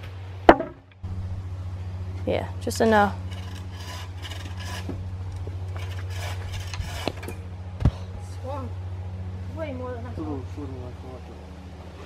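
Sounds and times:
hand saw cutting wood: 3.3s - 5.0s, 5.8s - 7.4s.

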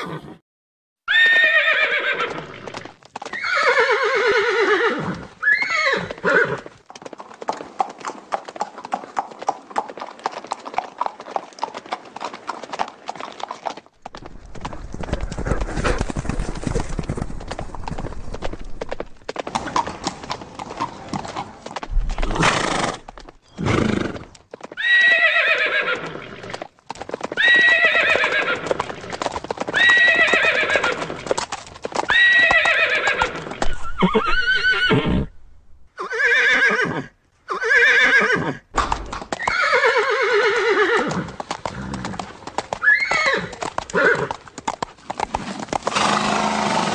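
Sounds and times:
horse whinnying: 0.0s - 0.4s, 1.1s - 6.7s, 22.1s - 26.6s, 27.3s - 31.4s, 32.0s - 38.7s, 39.3s - 44.4s, 45.5s - 46.9s
rapid hoofbeats: 6.0s - 34.4s, 40.5s - 46.9s.

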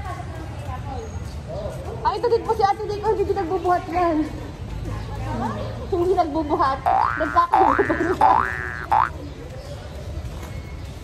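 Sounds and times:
cartoon boing: 6.8s - 9.1s.

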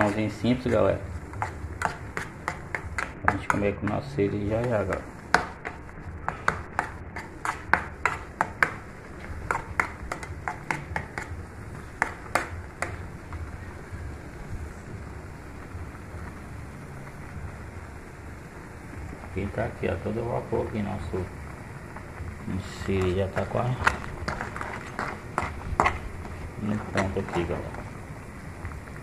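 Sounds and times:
low steady background noise: 0.0s - 29.0s.

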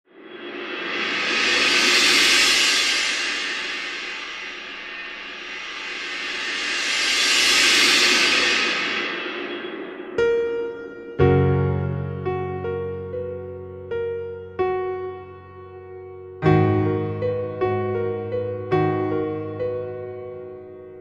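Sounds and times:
cymbal-like shimmering swells: 0.1s - 11.4s.

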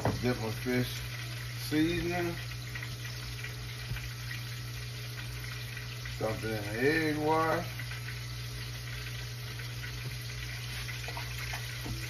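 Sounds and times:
fish frying in oil: 0.0s - 12.0s.

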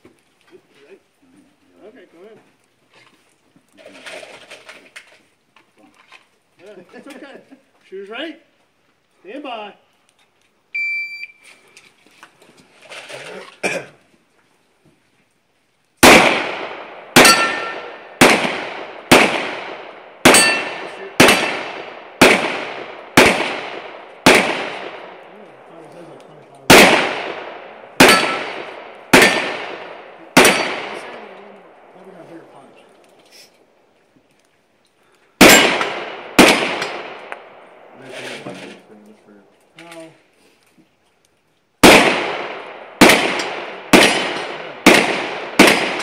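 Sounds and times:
shot timer beep: 10.8s - 11.4s
pistol shots with echo: 16.0s - 25.8s, 26.6s - 32.2s, 35.4s - 38.0s, 41.8s - 46.0s.

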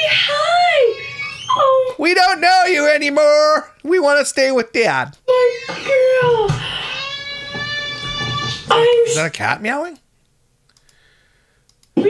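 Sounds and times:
faint clicks: 10.2s - 11.0s, 11.7s - 12.0s.

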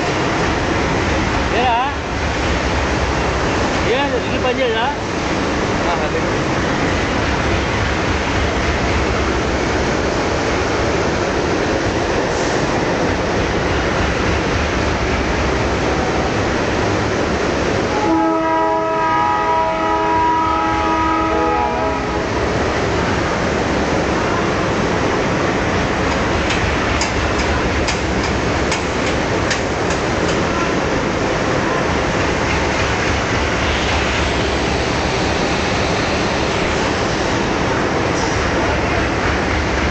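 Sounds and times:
train rumbling: 0.0s - 39.9s
train horn: 17.9s - 22.4s.

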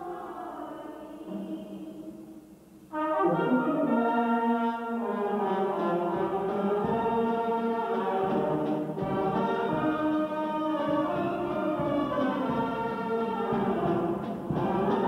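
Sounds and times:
brass band playing: 2.9s - 15.0s.

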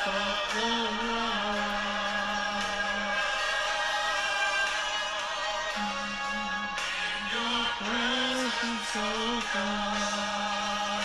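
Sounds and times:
choir holding chord: 0.0s - 11.0s
lead vocal singing: 0.0s - 11.0s.

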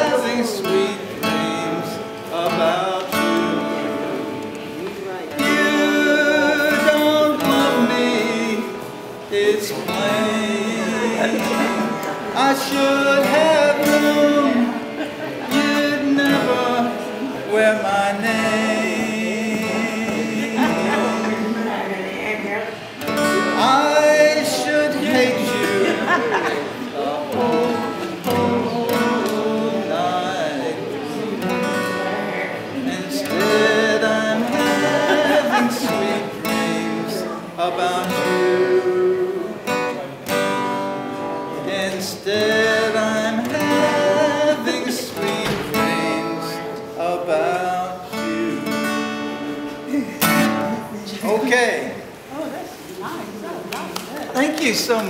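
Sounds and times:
man singing: 0.0s - 52.0s
acoustic guitar strumming: 0.0s - 52.6s.

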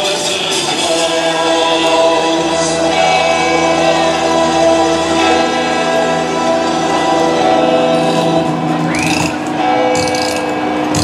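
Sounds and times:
loud carnival music: 0.0s - 11.0s.

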